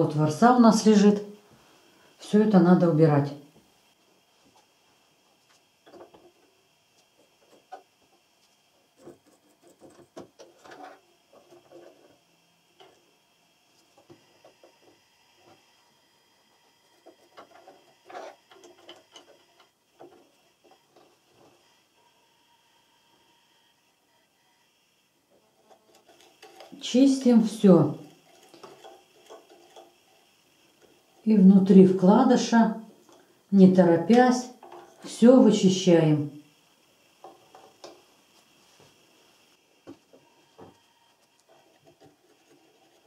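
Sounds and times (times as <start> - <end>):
brush scratching in sewing machine: 4.0 - 36.2, 37.2 - 43.0.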